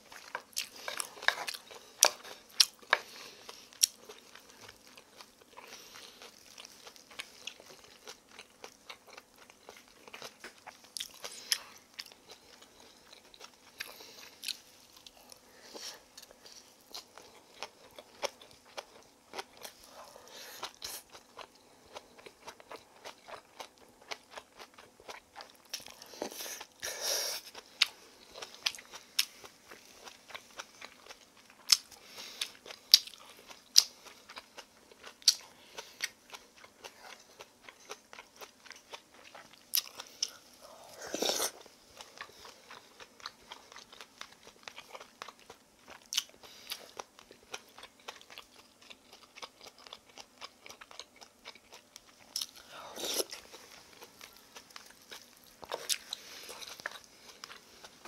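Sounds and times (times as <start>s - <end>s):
chewing and crunching food: 0.0s - 58.0s.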